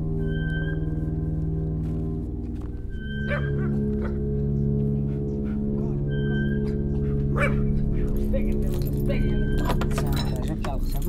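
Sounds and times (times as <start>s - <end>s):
piano chords: 0.0s - 11.0s
dog yelping: 3.1s - 4.2s, 6.1s - 8.2s.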